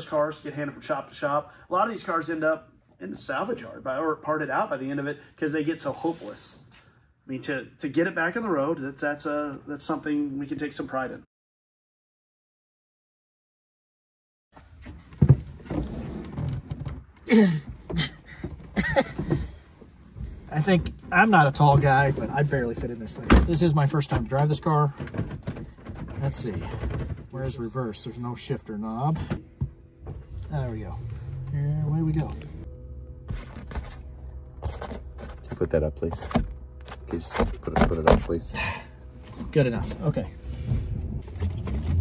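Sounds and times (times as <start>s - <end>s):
road noise rumble: 14.6s - 42.0s
man laughing: 17.3s - 19.5s
shuffling against car seat: 33.3s - 38.4s.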